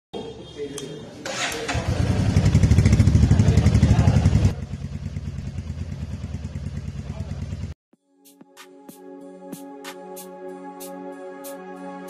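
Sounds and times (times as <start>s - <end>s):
motorcycle engine idling: 1.3s - 7.8s.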